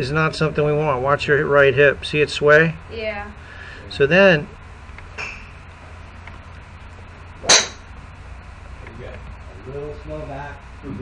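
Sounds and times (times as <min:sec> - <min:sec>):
golf club striking ball: 0:05.1 - 0:05.6, 0:07.4 - 0:07.9.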